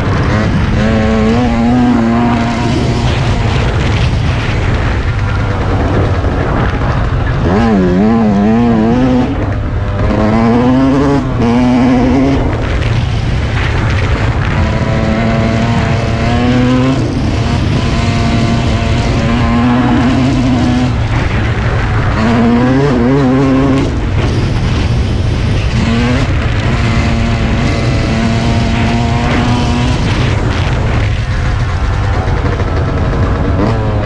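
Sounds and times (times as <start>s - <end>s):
dirt bike engine revving: 0.0s - 34.0s.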